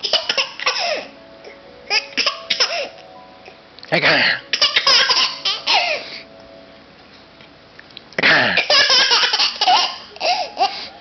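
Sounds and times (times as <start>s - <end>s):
baby giggling: 0.0s - 1.0s, 4.5s - 6.1s, 8.6s - 10.9s.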